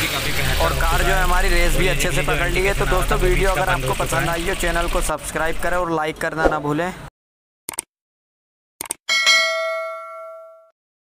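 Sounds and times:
bright bell ding: 9.1 - 10.8.

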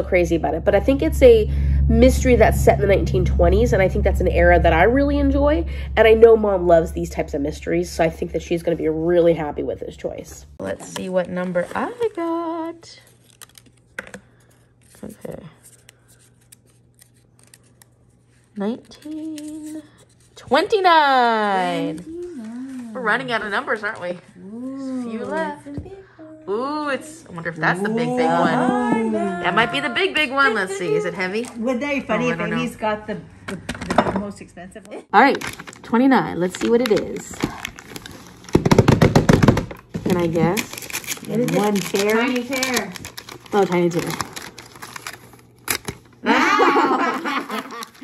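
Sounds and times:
paper crinkling: 13.0 - 20.4, 35.2 - 38.9, 39.8 - 46.2, 47.4 - 48.0.

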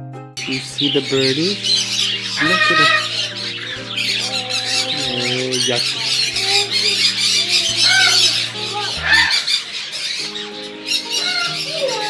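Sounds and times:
parrots chattering and squawking: 0.4 - 12.0.

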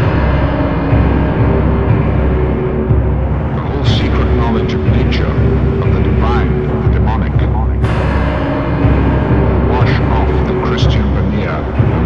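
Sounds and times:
low droning rumble: 0.0 - 12.0.

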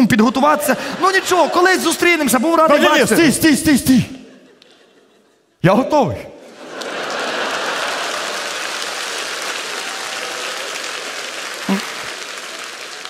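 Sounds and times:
audience applauding: 6.5 - 13.0.

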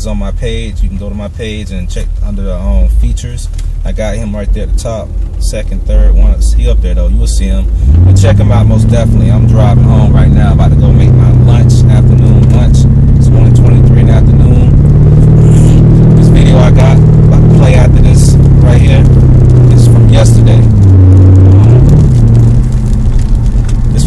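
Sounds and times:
car engine and road noise: 0.0 - 24.0.

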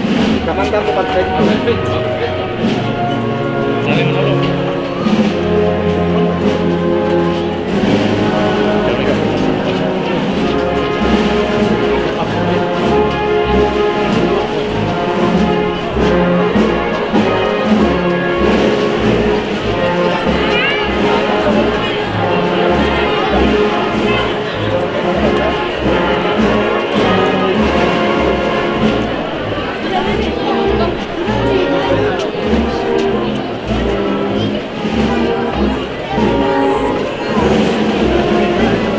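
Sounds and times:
crowd voices: 0.0 - 38.9
low drum beats: 0.0 - 38.9
wind band playing a march: 0.0 - 38.9.

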